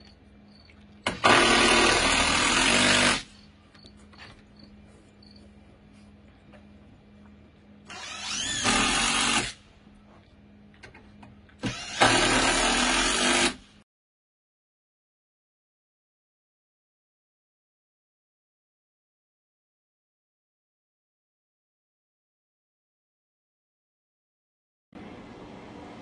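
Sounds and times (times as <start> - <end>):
cordless drill driving into wood: 1.0 - 3.3, 7.9 - 9.6, 11.6 - 13.7.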